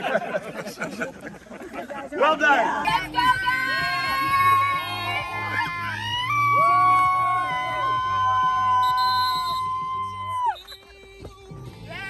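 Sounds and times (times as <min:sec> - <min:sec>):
men howling: 0:02.9 - 0:08.9.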